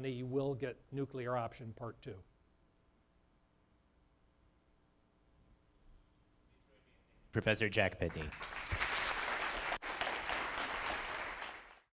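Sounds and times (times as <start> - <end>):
audience applauding: 8.0 - 11.9.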